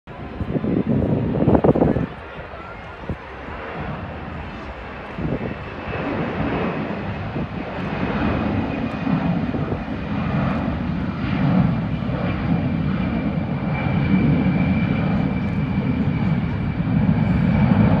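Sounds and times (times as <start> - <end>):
jet aircraft engine roar: 0.1 - 18.0.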